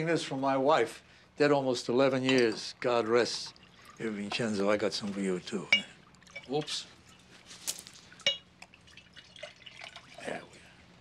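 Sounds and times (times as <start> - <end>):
glass clink: 2.2 - 2.6, 5.6 - 6.6, 8.2 - 8.5
drink pouring into glass: 8.1 - 10.4.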